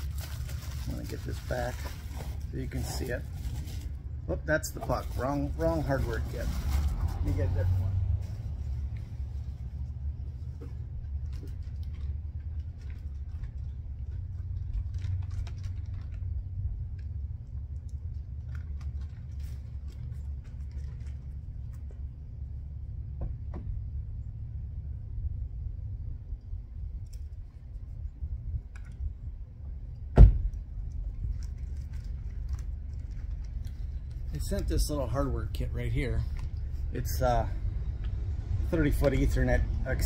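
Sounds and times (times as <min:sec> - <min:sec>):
steady low rumble: 0:00.0 - 0:40.0.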